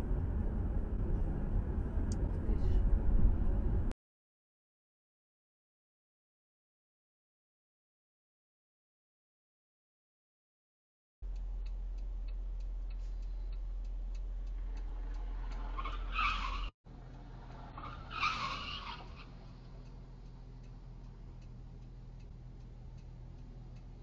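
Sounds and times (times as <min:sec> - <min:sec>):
low cabin hum: 0:00.0 - 0:03.9, 0:11.2 - 0:17.4
light ticking: 0:11.2 - 0:16.1, 0:18.7 - 0:24.0
car tyres squealing: 0:14.6 - 0:19.7.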